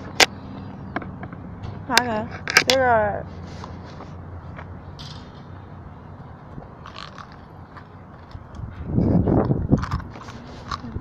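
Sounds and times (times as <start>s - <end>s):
wind rumble on microphone: 7.8s - 11.0s.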